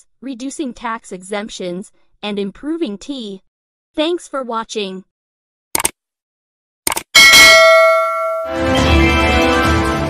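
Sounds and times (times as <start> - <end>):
bright bell ding: 7.2 - 8.7.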